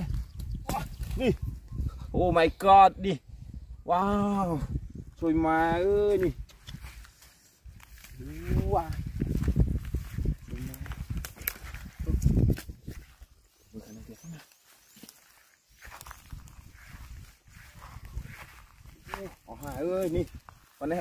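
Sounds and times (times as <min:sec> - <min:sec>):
footsteps through brush and grass: 0:05.0 - 0:21.0.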